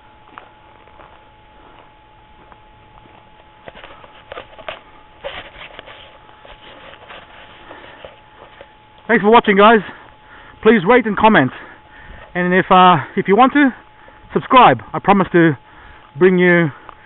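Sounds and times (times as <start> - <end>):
footsteps on leafy dirt: 0.0 - 10.3
faint steady hum: 0.0 - 17.0.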